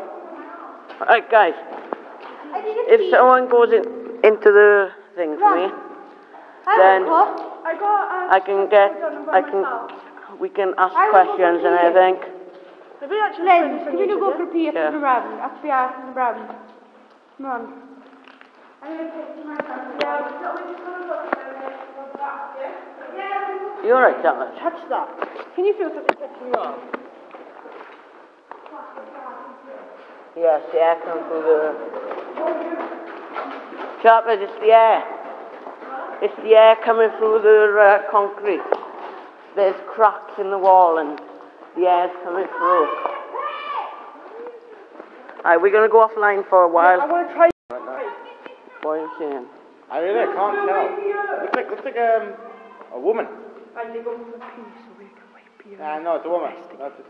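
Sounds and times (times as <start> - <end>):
indistinct voices talking: 0.0 - 55.8.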